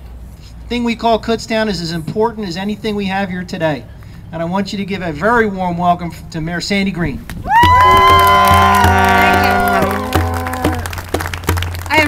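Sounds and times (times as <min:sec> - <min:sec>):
scattered clapping: 0:07.5 - 0:12.0.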